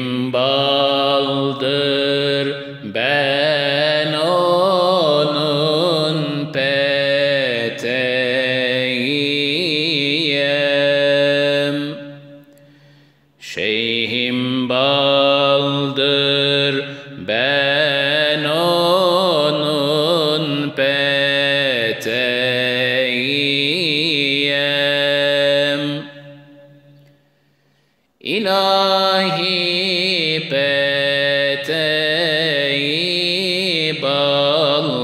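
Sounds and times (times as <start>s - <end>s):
man singing unaccompanied hymn: 0.0s - 12.2s, 13.4s - 26.3s, 28.2s - 35.0s.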